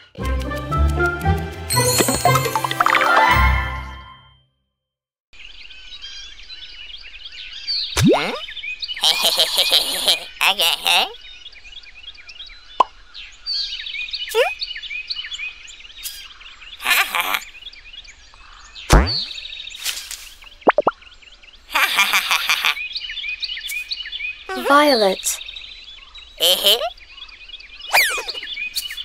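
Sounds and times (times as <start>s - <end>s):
cartoon birds chirping: 7.9s - 11.2s, 14.3s - 14.7s, 16.0s - 17.8s, 18.8s - 19.4s, 20.4s - 21.0s, 21.6s - 29.0s
cartoon pops and bursts: 8.0s - 8.4s, 18.9s - 19.3s, 20.6s - 20.9s.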